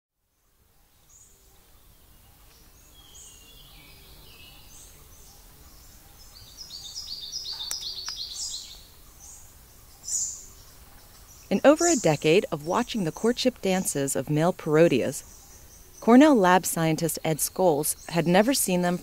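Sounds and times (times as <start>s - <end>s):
birds chirping: 0.4s - 19.0s.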